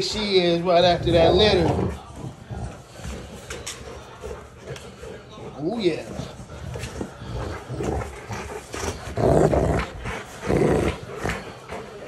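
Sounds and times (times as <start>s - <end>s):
dog growling: 0.0s - 12.0s.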